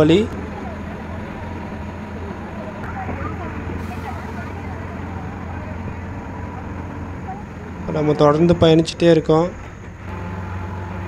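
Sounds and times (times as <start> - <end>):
bus engine droning: 0.0 - 11.0.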